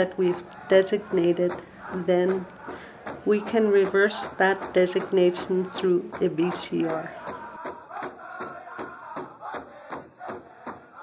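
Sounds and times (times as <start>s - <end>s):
voices chanting: 0.0s - 11.0s
fast drumbeat: 1.0s - 10.8s.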